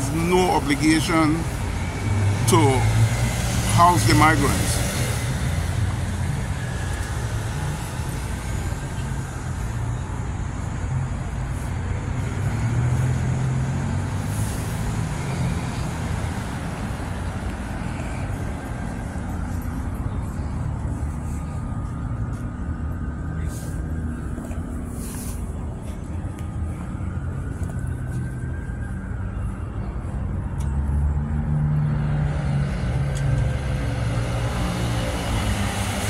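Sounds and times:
road traffic rumble: 0:00.0 - 0:36.0.

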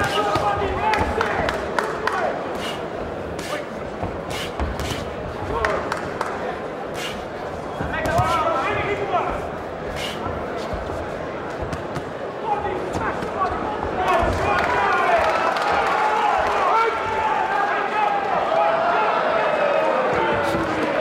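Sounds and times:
arena crowd shouting: 0:00.0 - 0:02.8, 0:12.2 - 0:21.0.

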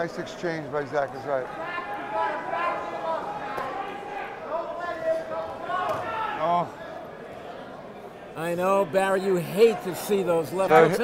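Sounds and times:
men's voices: 0:08.4 - 0:11.0.

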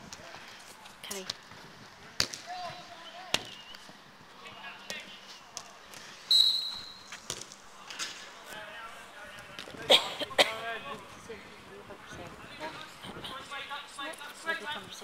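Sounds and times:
whistle blast: 0:06.3 - 0:07.1.

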